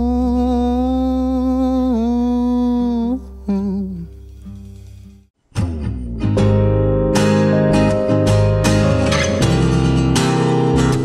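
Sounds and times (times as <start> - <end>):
man singing long note: 0.0 - 4.2.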